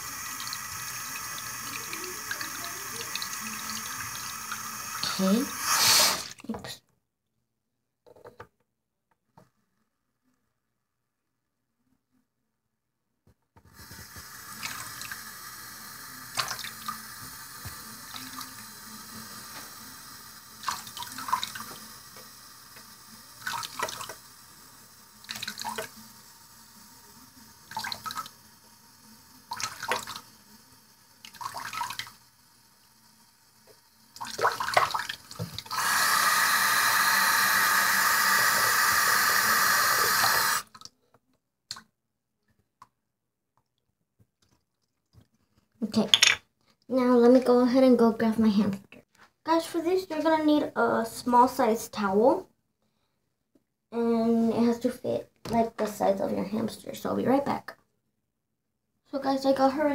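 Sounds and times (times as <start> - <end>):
water splashes: 16.4 - 17.0, 29.5 - 30.2, 31.2 - 32.1, 34.2 - 35.7
tap running into sink: 46.1 - 46.4.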